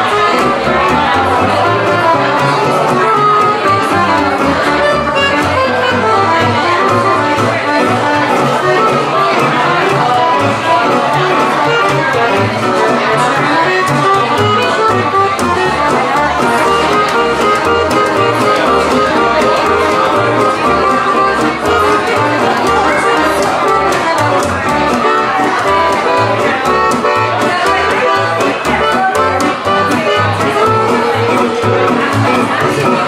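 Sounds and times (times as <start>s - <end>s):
accordion melody: 0.0s - 33.0s
plucked double bass: 0.0s - 33.0s
resonator guitar strumming: 0.0s - 33.0s.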